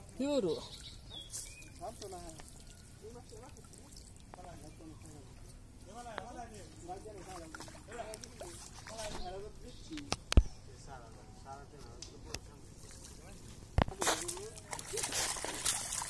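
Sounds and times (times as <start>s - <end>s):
water sloshing: 0.0s - 10.3s, 12.6s - 16.0s.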